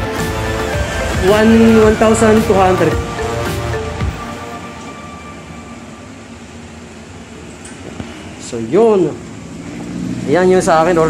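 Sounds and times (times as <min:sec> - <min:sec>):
steady background hum: 0:00.6 - 0:10.5.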